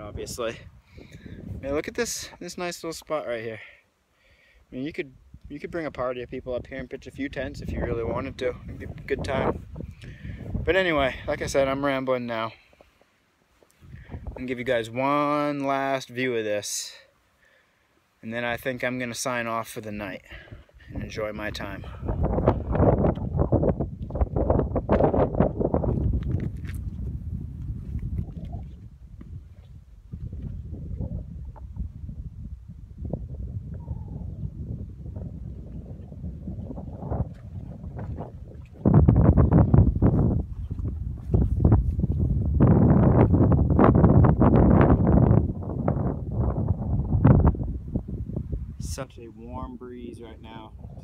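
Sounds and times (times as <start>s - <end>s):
wind buffeting microphone: 0.0s - 2.4s, 5.2s - 12.0s, 13.8s - 14.8s, 20.3s - 51.0s.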